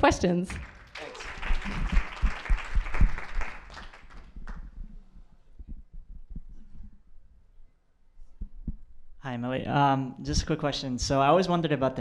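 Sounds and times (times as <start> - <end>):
audience applauding: 0.5 - 4.8.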